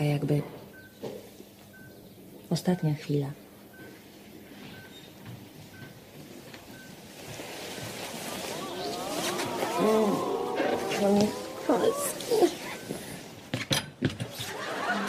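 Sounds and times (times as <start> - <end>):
patient monitor beeping: 4.6 - 5.1, 6.7 - 7.1, 8.0 - 13.2
audience whooping and hollering: 8.1 - 13.0, 14.5 - 15.0.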